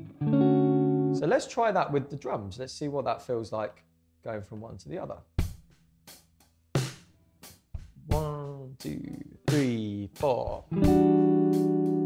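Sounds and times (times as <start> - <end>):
slow drum beat: 5.3 - 12.0.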